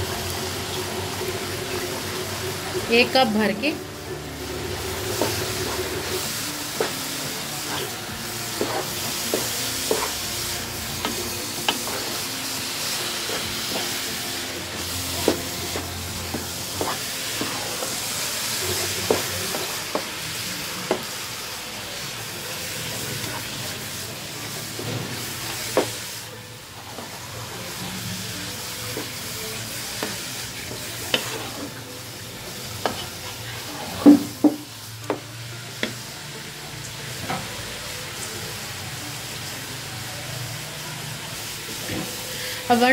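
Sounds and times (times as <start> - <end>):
food sizzling in a pot: 0.0 - 42.9.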